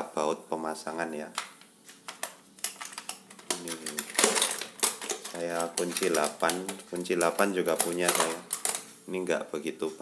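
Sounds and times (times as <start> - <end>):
metal tools clinking in toolbox: 2.7 - 6.3.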